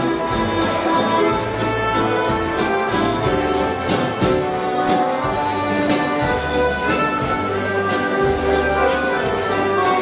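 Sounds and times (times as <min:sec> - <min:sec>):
accordions playing melody: 0:00.0 - 0:10.0
drum kit: 0:00.0 - 0:10.0
guitar: 0:00.0 - 0:10.0.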